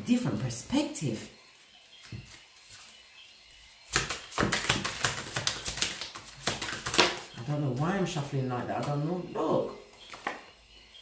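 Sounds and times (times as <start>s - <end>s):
cards shuffled by hand: 3.9s - 7.3s
cards snapping: 3.9s - 7.3s.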